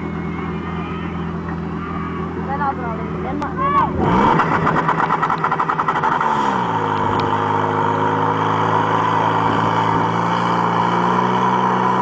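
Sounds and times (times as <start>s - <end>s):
petrol engine running steadily: 0.0s - 12.0s.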